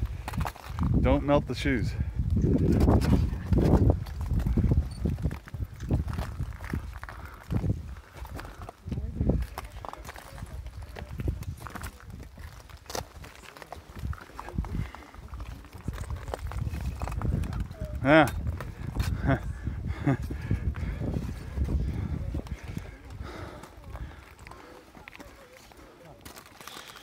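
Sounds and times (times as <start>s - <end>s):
wind on microphone: 0.0s - 13.2s, 13.9s - 24.6s
footsteps crunching on rock: 2.4s - 19.2s, 20.1s - 27.0s.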